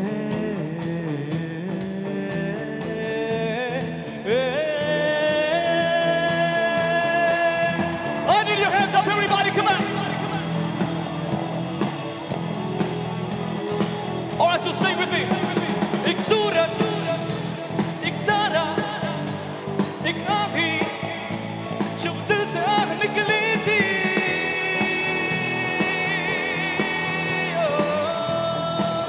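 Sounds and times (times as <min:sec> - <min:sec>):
man singing: 0:00.0 - 0:12.8, 0:13.7 - 0:29.0
drums: 0:00.0 - 0:29.0
electric guitar: 0:00.0 - 0:29.0.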